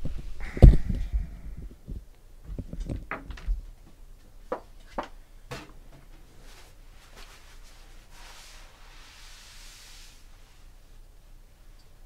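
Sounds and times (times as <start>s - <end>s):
soft rustling: 6.1s - 11.0s.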